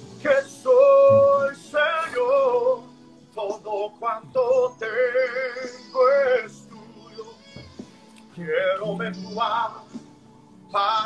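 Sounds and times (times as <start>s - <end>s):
man singing slow worship melody: 0.0s - 11.0s.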